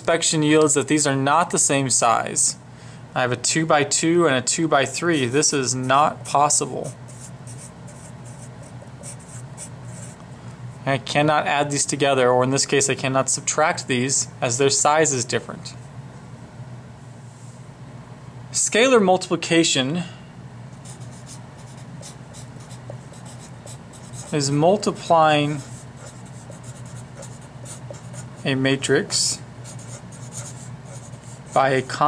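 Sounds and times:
faint low hum: 0:00.0 - 0:32.0
marker scratching on paper: 0:05.1 - 0:10.2, 0:20.8 - 0:24.5, 0:25.4 - 0:28.5, 0:29.6 - 0:31.8.

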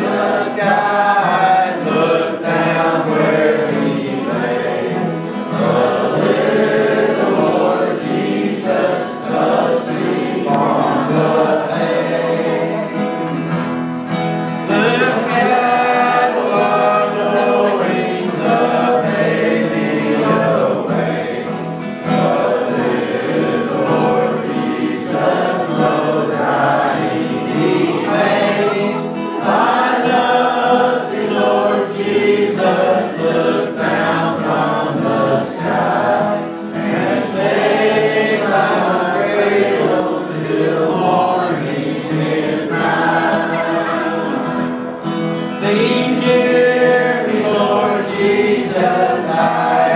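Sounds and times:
men singing: 0:00.0 - 0:13.7, 0:14.5 - 0:49.9
acoustic guitars strummed: 0:00.0 - 0:49.9
crowd singing along: 0:00.0 - 0:49.9.

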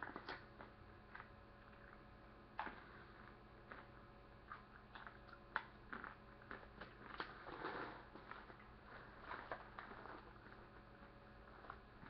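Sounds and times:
person chewing candy: 0:00.0 - 0:02.0, 0:02.6 - 0:12.0.

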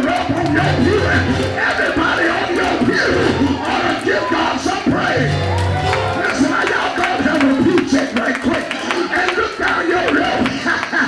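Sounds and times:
preacher chanting into microphone: 0:00.0 - 0:05.4, 0:06.1 - 0:11.0.

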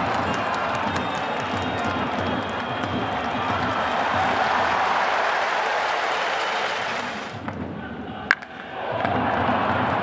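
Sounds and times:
stadium crowd clapping and cheering: 0:00.0 - 0:07.6, 0:08.3 - 0:10.0.

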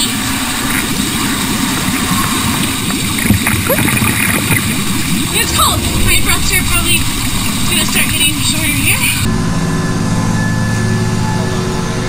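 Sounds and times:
water gurgling and bubbling: 0:00.0 - 0:09.3.

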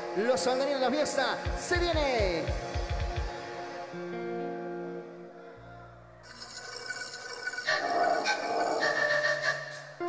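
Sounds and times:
electronic keyboard sustained notes: 0:00.0 - 0:10.0.

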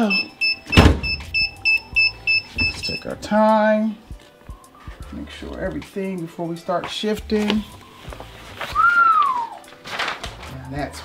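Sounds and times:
gliding whistle: 0:08.8 - 0:09.6.

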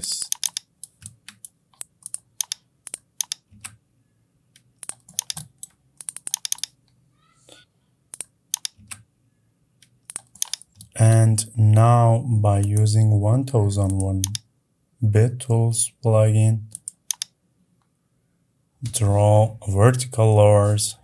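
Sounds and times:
mouse and keyboard clicks: 0:00.0 - 0:03.8, 0:04.8 - 0:06.8, 0:08.2 - 0:09.0, 0:09.8 - 0:11.0, 0:16.7 - 0:17.4.

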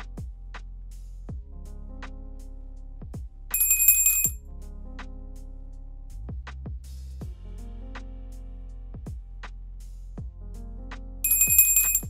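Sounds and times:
background music with a beat: 0:00.0 - 0:12.0
bell-like notification ding: 0:03.6 - 0:04.4, 0:11.3 - 0:12.0.

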